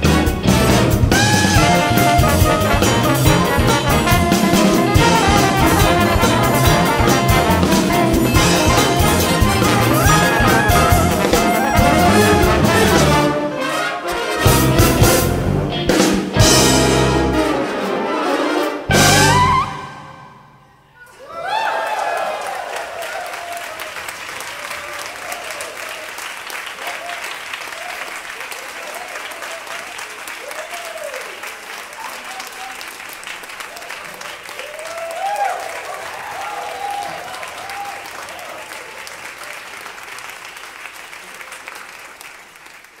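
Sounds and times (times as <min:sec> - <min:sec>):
audience applauding: 0:00.9 - 0:13.4, 0:21.1 - 0:43.0.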